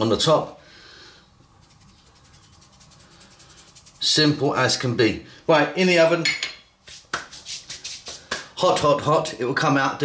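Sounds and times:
fingers rubbing softly: 0:01.4 - 0:04.6.

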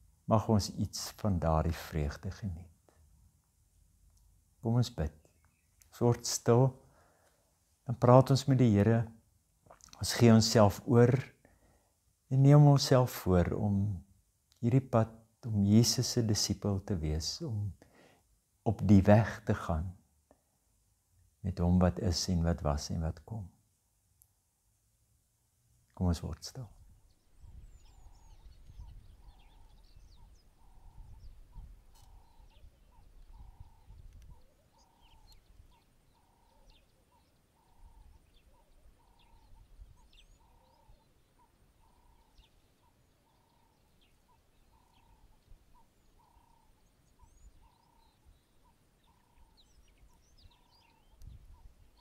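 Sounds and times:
soft repeated bird call: 0:04.2 - 0:07.5, 0:26.0 - 0:52.0.

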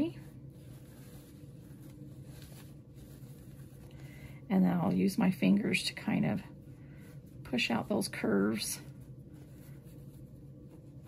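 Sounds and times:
fabric rustling: 0:00.0 - 0:11.0
steady low hum: 0:00.0 - 0:11.0.

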